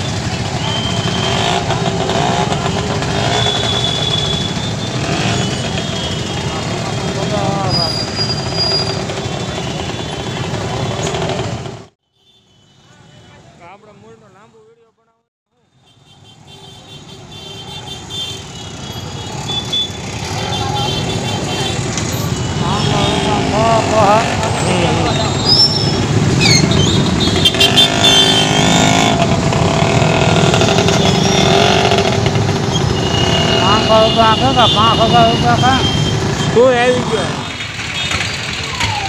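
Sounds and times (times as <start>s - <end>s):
motorcycle and scooter engines: 0.0s - 12.0s, 15.6s - 39.0s
people's voices: 20.3s - 25.7s.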